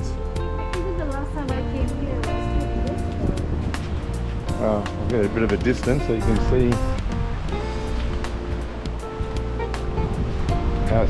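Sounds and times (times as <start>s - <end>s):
background music with held notes: 0.0s - 11.0s
light percussive ticks: 2.2s - 7.2s
surf rushing: 2.3s - 11.0s.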